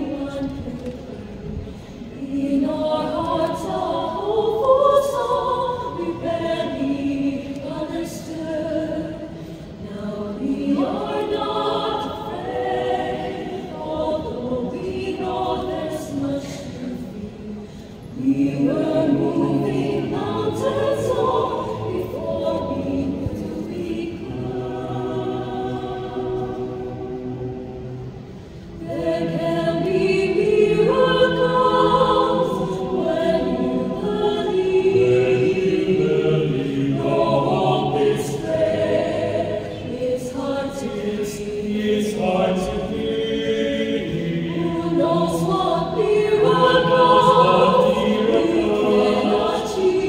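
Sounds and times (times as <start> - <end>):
mixed choir singing unaccompanied: 0.0 - 50.0.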